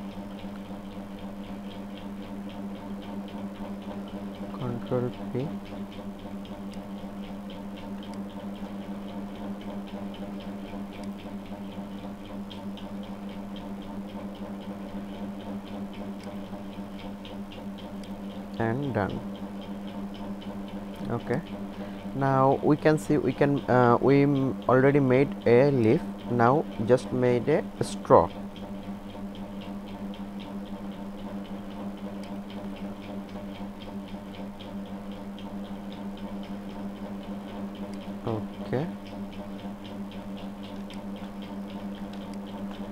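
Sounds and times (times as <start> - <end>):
steady low hum: 0.0 - 42.9
fast even ticking: 0.1 - 42.9.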